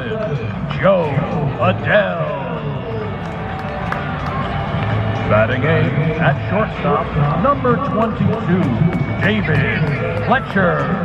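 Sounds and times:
announcer over public address: 0:00.0 - 0:03.2, 0:05.0 - 0:11.0
crowd chatter: 0:00.0 - 0:11.0.

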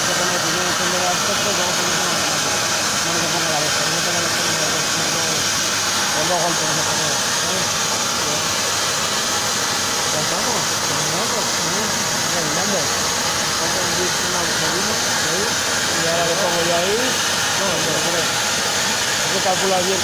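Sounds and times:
plasma torch hissing: 0:00.0 - 0:20.0.

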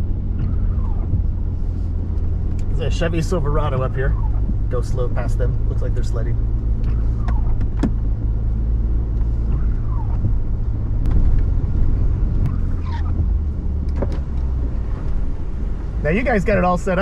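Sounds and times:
truck engine and tyre rumble: 0:00.0 - 0:17.0
windshield wiper squeak: 0:00.4 - 0:02.0, 0:06.8 - 0:08.0, 0:09.3 - 0:10.6, 0:12.4 - 0:15.1.

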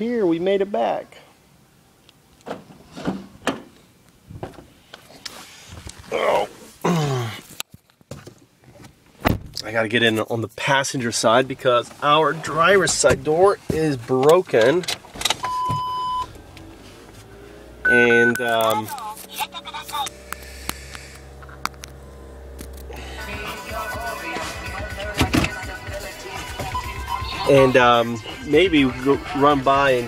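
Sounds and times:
electronic beep: 0:15.4 - 0:16.3, 0:17.8 - 0:18.9, 0:26.6 - 0:27.6.

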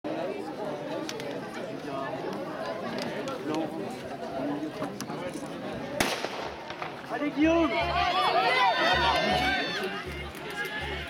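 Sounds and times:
chatter of many people: 0:00.1 - 0:11.0.

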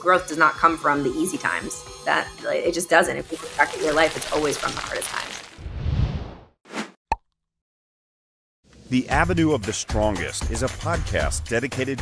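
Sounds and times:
voice: 0:00.0 - 0:05.4, 0:08.9 - 0:12.0.

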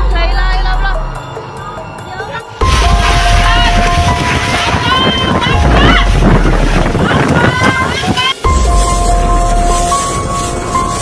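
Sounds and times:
voices: 0:00.0 - 0:08.5
wind buffeting microphone: 0:02.6 - 0:11.0.

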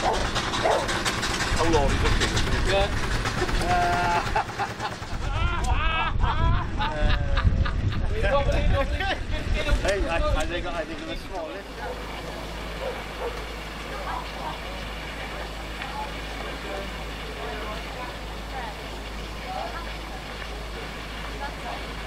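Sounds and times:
model steam engine running: 0:00.0 - 0:05.5, 0:11.5 - 0:22.0
faint voices: 0:11.0 - 0:22.0.

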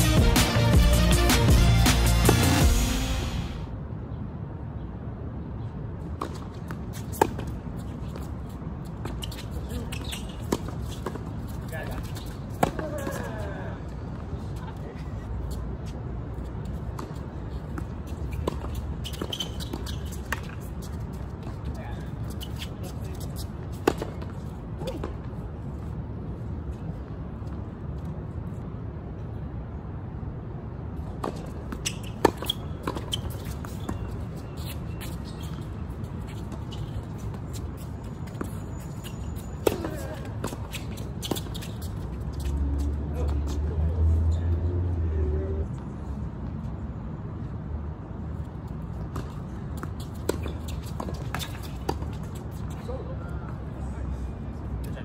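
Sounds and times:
music: 0:00.0 - 0:03.7
tennis balls struck by rackets: 0:01.2 - 0:02.6, 0:31.2 - 0:35.6, 0:39.6 - 0:41.7.

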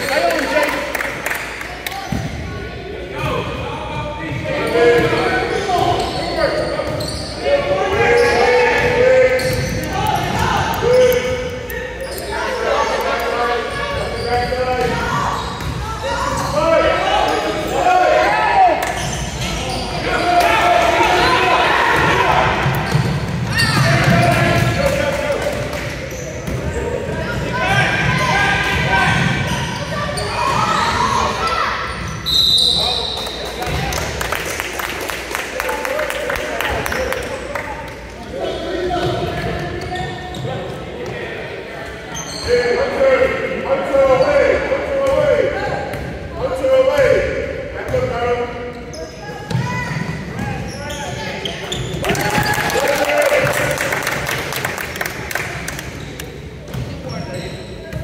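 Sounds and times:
voices echoing in gym: 0:00.0 - 0:58.0.

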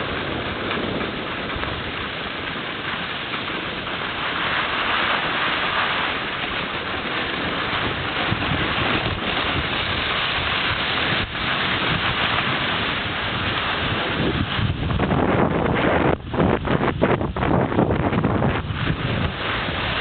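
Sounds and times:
skis scraping over snow: 0:00.0 - 0:20.0
wind buffeting microphone: 0:00.0 - 0:20.0.

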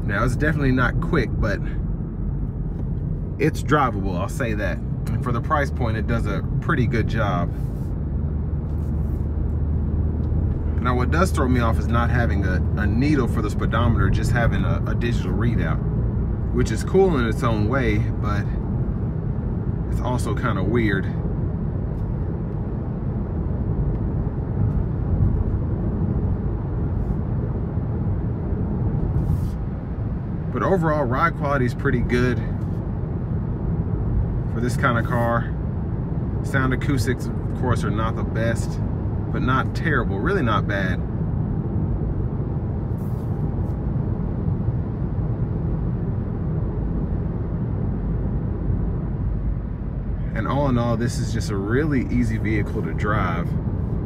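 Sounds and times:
car engine running: 0:00.0 - 0:54.0
road and tyre noise: 0:00.0 - 0:54.0.

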